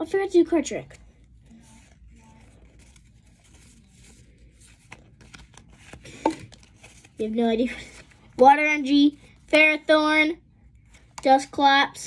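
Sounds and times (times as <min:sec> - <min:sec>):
trading cards shuffling: 0:00.9 - 0:10.1.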